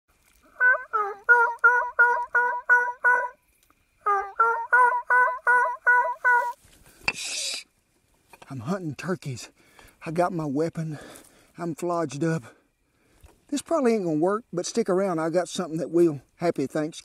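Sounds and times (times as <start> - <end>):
turkey call yelps: 0.5 - 3.4, 4.0 - 6.6
brief hiss: 6.7 - 7.7.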